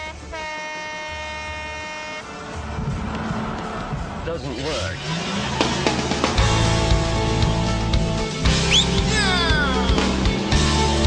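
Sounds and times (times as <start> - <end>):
truck horn blast: 0.0 - 2.4
vehicle engine noise: 2.2 - 11.0.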